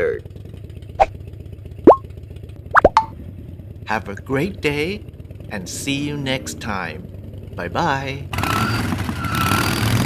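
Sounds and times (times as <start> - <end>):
cartoon motorcycle idling rumble: 0.0 - 10.0
cartoon pop sound effects: 2.7 - 3.2.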